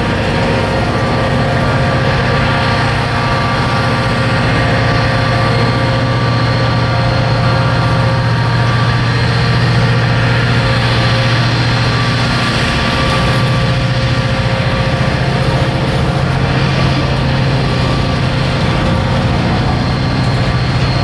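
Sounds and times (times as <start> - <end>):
diesel locomotive engine working: 0.0 - 21.0
rolling freight cars rumbling: 0.0 - 21.0.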